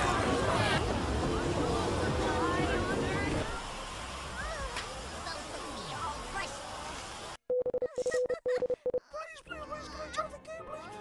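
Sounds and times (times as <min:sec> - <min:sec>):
cartoon voices and effects: 0:07.8 - 0:11.0.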